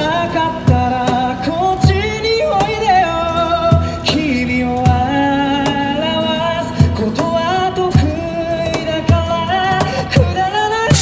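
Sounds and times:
live pop-rock band: 0.0 - 11.0
man singing high: 10.2 - 11.0.

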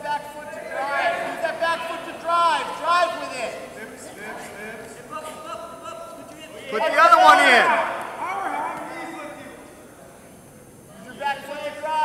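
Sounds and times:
people shouting calls: 6.6 - 9.6.

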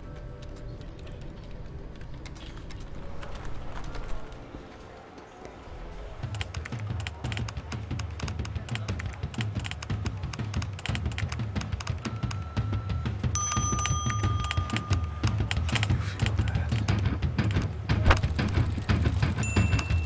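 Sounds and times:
background music with low pulse: 0.0 - 20.0
fast typing on keyboard: 6.2 - 12.6, 13.6 - 20.0
held high tones: 12.0 - 16.0.

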